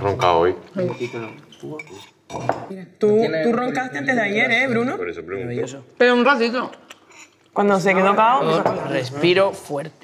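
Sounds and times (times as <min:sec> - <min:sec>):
cutlery and crockery clinking: 0:00.0 - 0:02.8.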